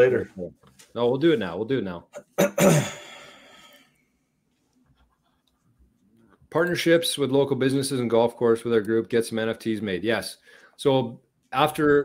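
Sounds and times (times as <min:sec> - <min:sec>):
man clearing his throat: 0:02.2 - 0:03.2.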